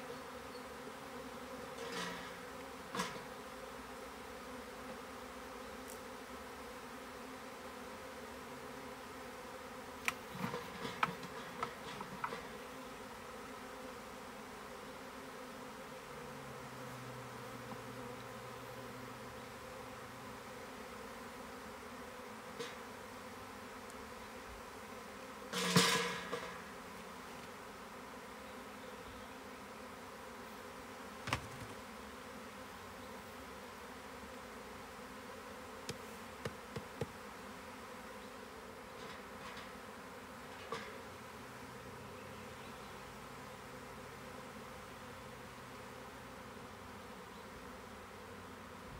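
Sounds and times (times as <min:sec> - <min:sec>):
honeybees buzzing: 0:00.0 - 0:48.9
knocks on wooden hive parts: 0:31.2 - 0:31.8, 0:35.8 - 0:37.2.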